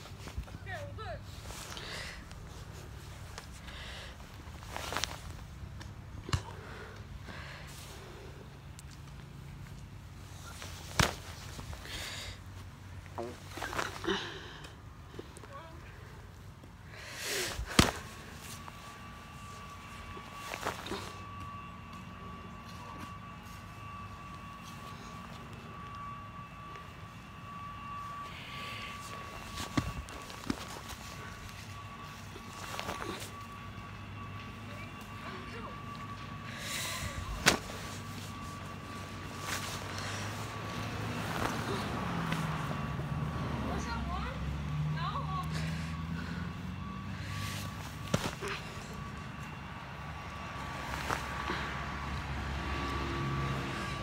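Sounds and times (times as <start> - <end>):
faint steady high whine: 0.0 - 54.0
car passing: 16.9 - 54.0.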